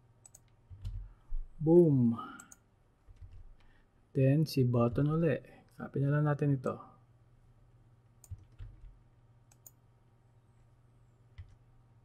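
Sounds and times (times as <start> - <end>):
computer mouse clicks: 0.2 - 1.0, 8.2 - 9.8, 11.3 - 11.6
person speaking: 1.6 - 2.7, 4.1 - 7.0.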